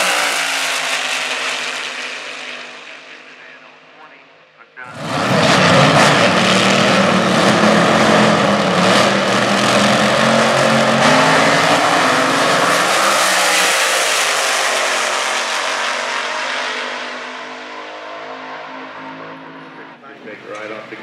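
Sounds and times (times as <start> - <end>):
dragster engines at full throttle: 0.0 - 4.2, 4.8 - 21.0.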